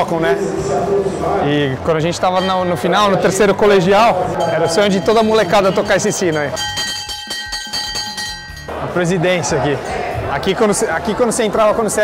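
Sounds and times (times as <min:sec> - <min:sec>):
school bell ringing: 0:02.3 - 0:03.2, 0:04.3 - 0:08.8.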